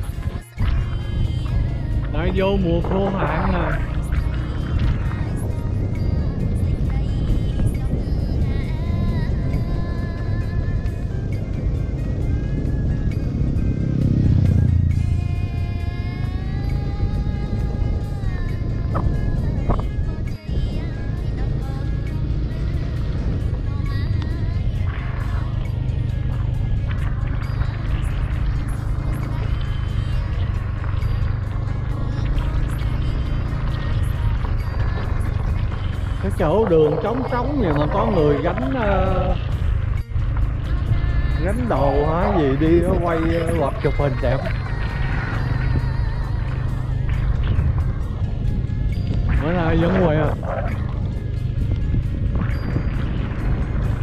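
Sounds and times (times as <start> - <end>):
motorbike engine on gravel road: 0.0 - 54.0
music: 0.0 - 54.0
wind rumble: 0.0 - 54.0.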